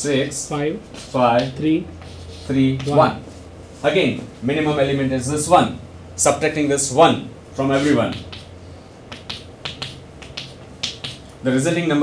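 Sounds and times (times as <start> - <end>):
chalk tapping on a blackboard: 1.4 - 3.0, 7.8 - 11.4.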